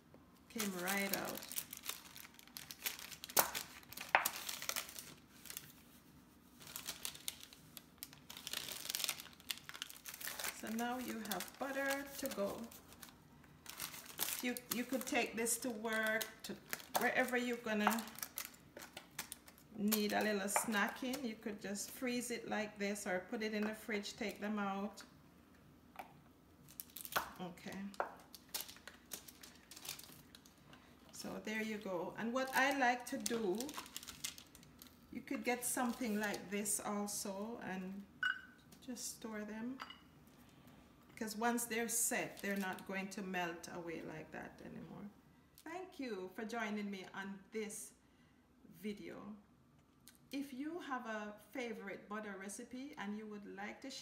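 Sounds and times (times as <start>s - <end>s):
parchment paper crinkling: 0.5s - 21.9s, 26.7s - 30.9s, 31.8s - 36.6s.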